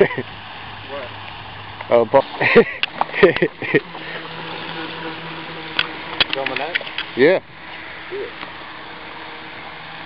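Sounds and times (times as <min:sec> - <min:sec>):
small boat motor running: 0:00.0 - 0:10.0.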